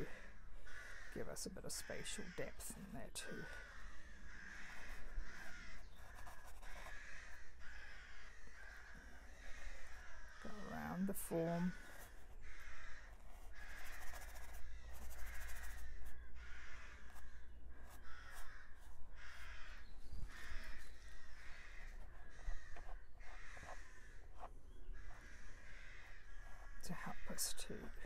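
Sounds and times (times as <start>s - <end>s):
crows cawing: 0.0s - 28.0s.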